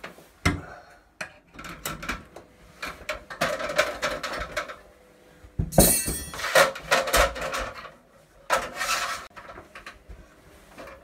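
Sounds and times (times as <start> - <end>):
metal ladder sections scraping: 5.8 - 10.0.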